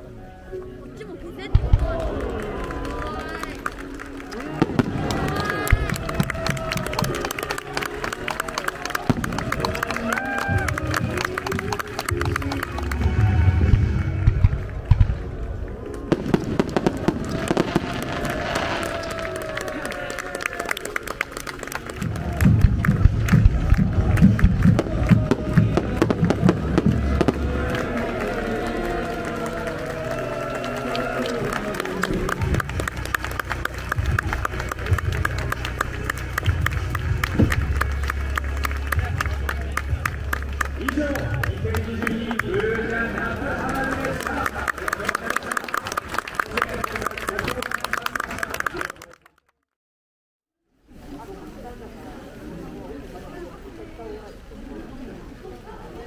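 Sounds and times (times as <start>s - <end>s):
music: 0.0s - 49.0s
crowd voices: 0.0s - 49.2s, 50.9s - 56.0s
fireworks booming and crackling: 1.5s - 2.2s, 4.6s - 7.6s, 9.0s - 19.7s, 22.0s - 28.4s.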